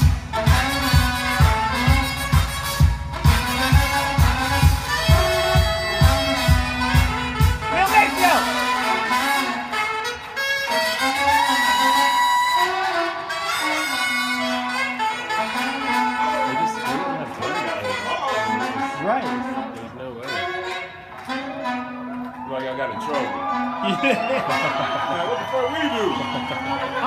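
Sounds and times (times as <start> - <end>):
soul-funk band with horns: 0.0 - 27.0.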